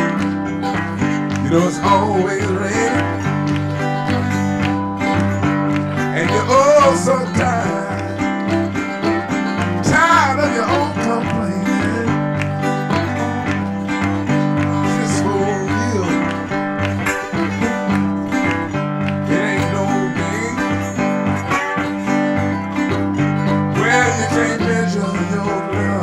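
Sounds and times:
acoustic guitar: 0:00.0 - 0:26.0
harmonica: 0:00.0 - 0:26.0
stepping bass line: 0:00.0 - 0:26.0.

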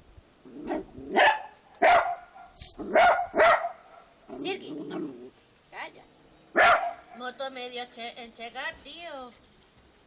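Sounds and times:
small dog barking sharply: 0:00.7 - 0:04.1, 0:06.5 - 0:07.2.

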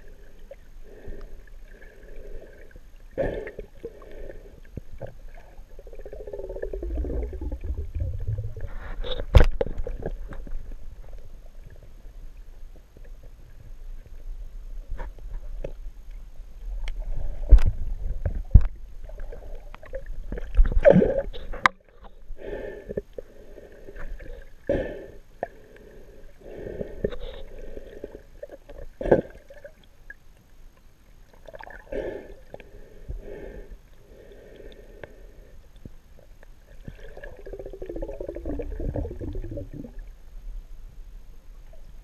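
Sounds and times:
underwater swishing water: 0:00.0 - 0:42.0
low rumble: 0:05.8 - 0:12.6.

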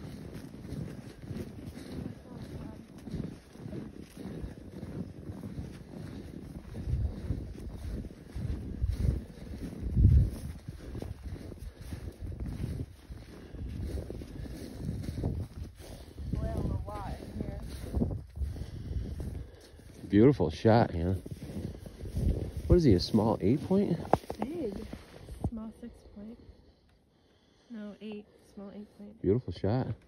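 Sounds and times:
footsteps in snow: 0:00.0 - 0:26.5
wind buffeting microphone: 0:00.0 - 0:26.7.

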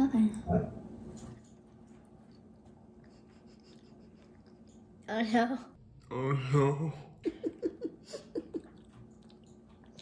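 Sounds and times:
people chewing candy: 0:01.2 - 0:05.1, 0:06.0 - 0:10.0.

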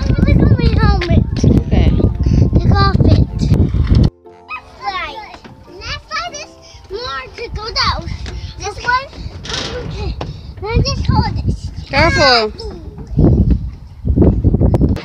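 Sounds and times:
children calling and squealing: 0:00.0 - 0:03.5, 0:04.4 - 0:13.8
faint music tones: 0:00.0 - 0:14.0.

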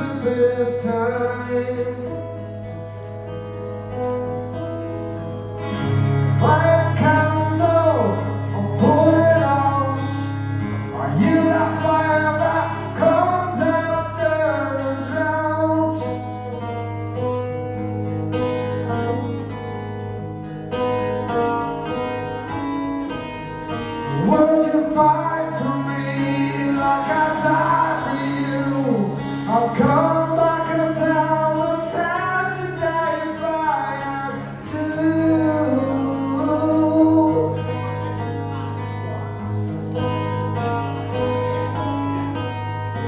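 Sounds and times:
man singing: 0:00.0 - 0:02.6, 0:06.2 - 0:16.7, 0:24.1 - 0:39.4
strummed acoustic guitar: 0:00.0 - 0:43.0.

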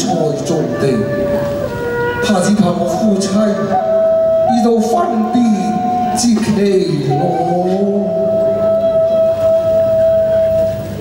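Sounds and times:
instrument holding long note: 0:00.3 - 0:11.0.

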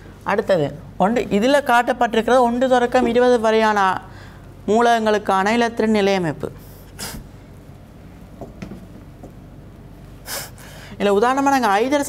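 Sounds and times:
low room hum: 0:00.0 - 0:12.0
sharp intake of breath: 0:10.2 - 0:11.0.

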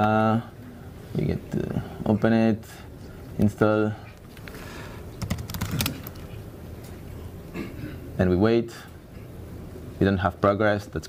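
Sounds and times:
laptop keyboard typing: 0:05.2 - 0:06.4.

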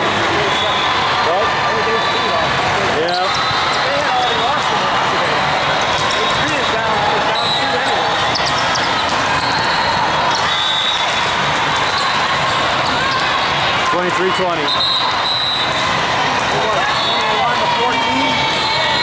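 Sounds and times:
many overlapping voices: 0:00.0 - 0:19.0
sneakers squeaking on court floor: 0:05.8 - 0:13.4.

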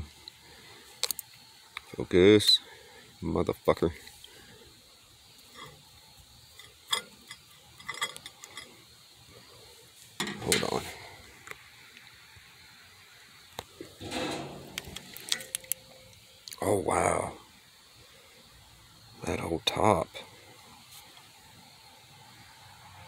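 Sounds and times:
faint steady hiss: 0:00.0 - 0:23.0
handling clicks knocks and rustles: 0:14.0 - 0:15.9.

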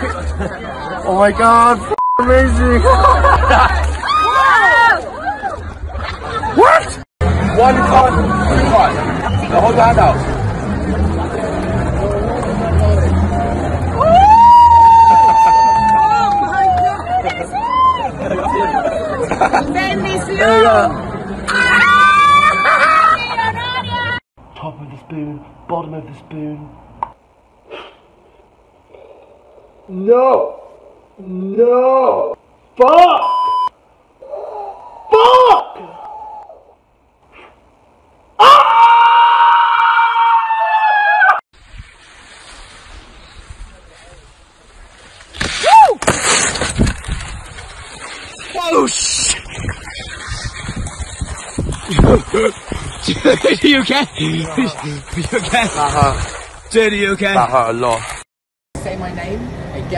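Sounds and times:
crowd chatter: 0:00.0 - 0:14.0
man screaming: 0:35.1 - 0:36.0, 0:38.4 - 0:41.4.

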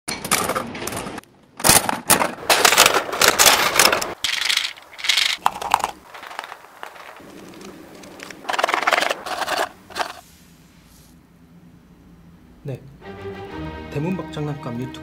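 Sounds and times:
metallic clicking and rattling: 0:00.1 - 0:10.2.

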